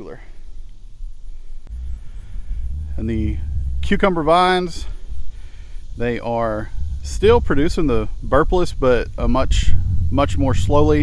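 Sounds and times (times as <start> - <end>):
low rumble on microphone: 0.0 - 11.0.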